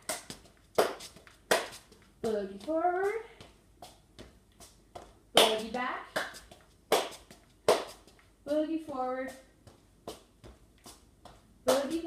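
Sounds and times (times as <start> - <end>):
sharp hand claps: 0.0 - 1.8, 5.4 - 5.6, 6.2 - 8.0
sneakers tapping on tile floor: 0.0 - 12.0.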